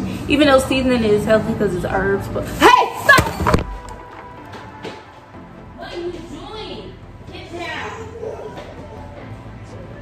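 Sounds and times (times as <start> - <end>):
soft background music: 0.0 - 10.0
woman shouting: 2.6 - 3.5.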